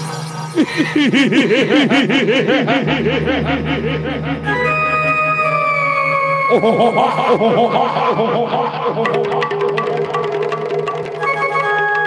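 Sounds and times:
low steady drone: 0.0 - 9.2
man laughing theatrically: 0.6 - 5.0, 6.5 - 9.8.

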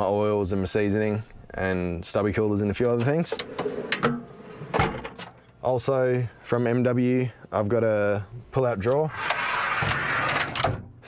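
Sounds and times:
drawer clicking to a stop: 2.9 - 5.4
drawer sliding on runners: 2.9 - 5.4, 9.1 - 10.9.

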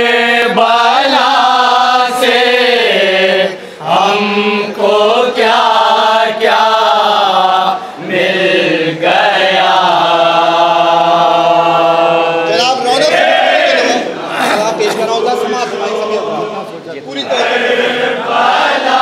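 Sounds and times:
men's chorus chanting: 0.0 - 19.0
man reciting a lament: 12.2 - 17.4.

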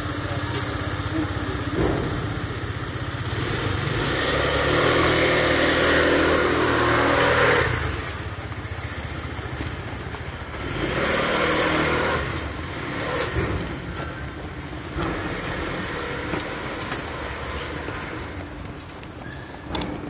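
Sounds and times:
vehicle engine running: 0.0 - 20.0.

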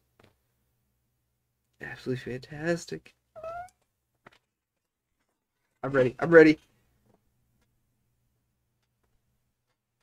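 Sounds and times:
cat meowing: 3.4 - 3.8.

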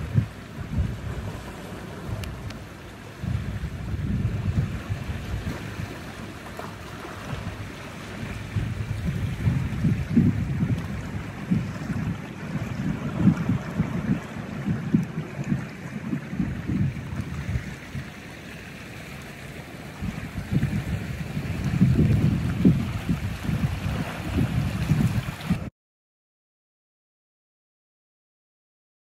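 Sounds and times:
sea swell on rocky shore: 0.0 - 25.7
wind rumbling on microphone: 0.0 - 25.7.

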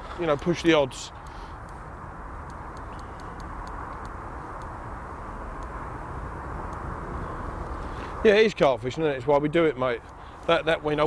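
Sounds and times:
low rumbling outdoor noise: 0.0 - 11.0
faint sharp ticks: 2.4 - 4.8, 5.6 - 5.8, 6.6 - 6.9, 10.0 - 10.6.

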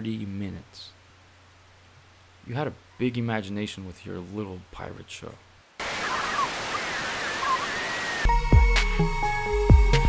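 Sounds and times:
tv static hiss: 0.0 - 8.3.

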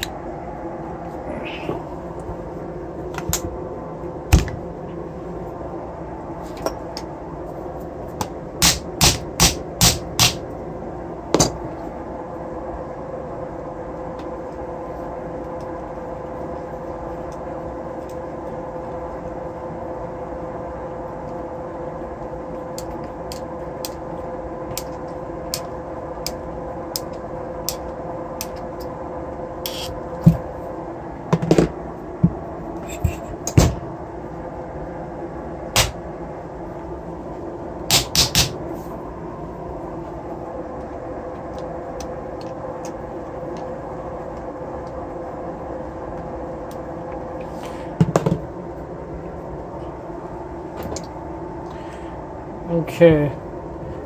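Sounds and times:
steady background hum: 0.0 - 54.0.

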